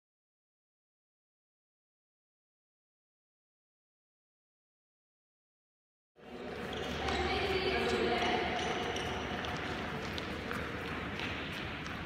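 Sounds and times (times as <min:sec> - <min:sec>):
players' voices: 0:06.2 - 0:11.2.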